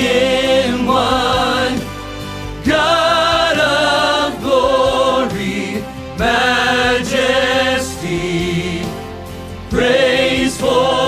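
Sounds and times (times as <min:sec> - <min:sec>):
voices singing held notes: 0:00.0 - 0:02.0, 0:02.6 - 0:11.0.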